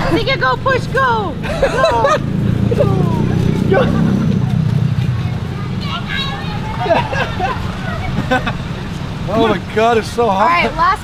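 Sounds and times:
vehicle engine rumbling: 0:00.0 - 0:11.0.

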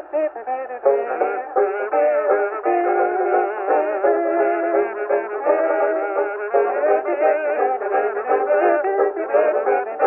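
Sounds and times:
banjo: 0:00.0 - 0:10.0.

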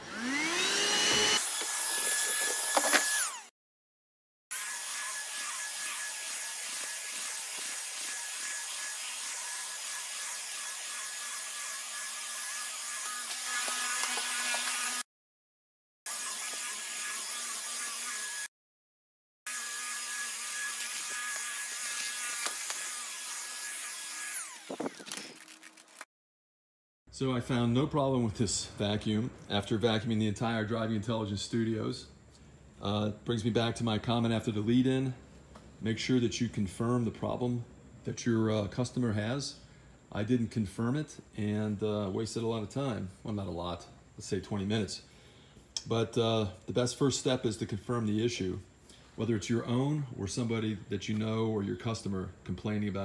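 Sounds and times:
vacuum cleaner whine: 0:00.0 - 0:03.4.

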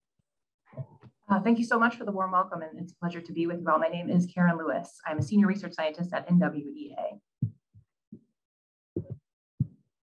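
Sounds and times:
soft low thumps: 0:05.1 - 0:05.5, 0:09.0 - 0:09.9.

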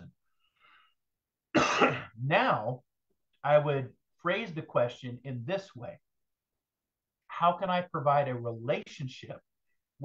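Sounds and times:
man clearing throat: 0:01.6 - 0:02.2.

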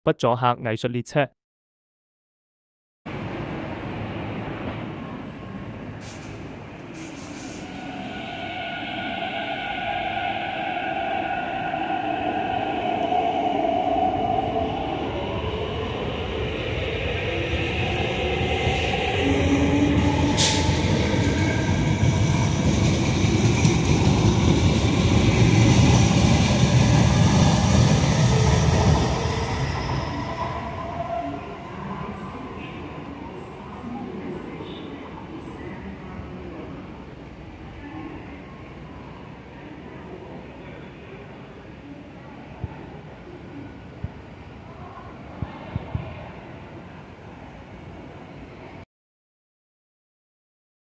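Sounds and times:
train wheels rumbling on rails: 0:05.7 - 0:11.8, 0:14.2 - 0:31.6.

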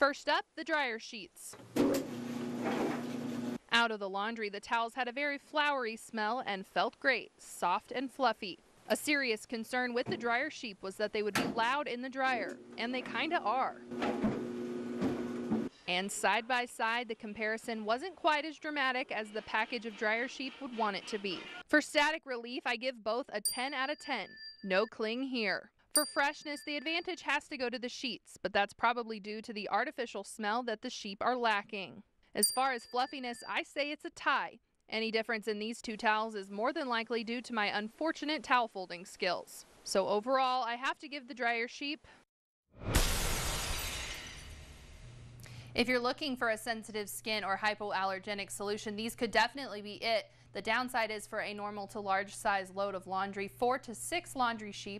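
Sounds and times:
clothes dryer hum: 0:01.6 - 0:03.6, 0:12.5 - 0:15.7
sharp crash: 0:42.8 - 0:45.3.

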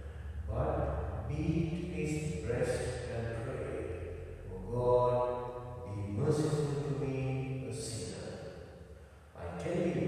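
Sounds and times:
man chanting: 0:00.0 - 0:08.3, 0:09.4 - 0:10.0.

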